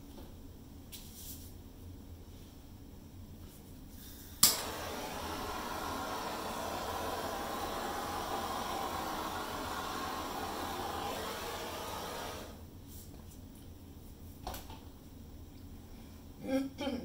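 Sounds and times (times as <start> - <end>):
hairdryer switch click: 4.4 - 5.0
hairdryer blowing: 4.4 - 12.6.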